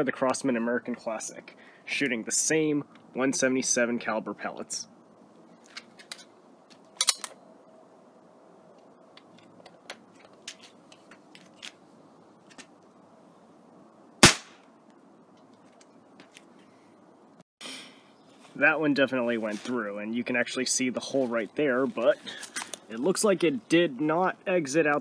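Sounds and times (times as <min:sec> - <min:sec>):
air pistol sharp crack: 0:14.2 - 0:14.7.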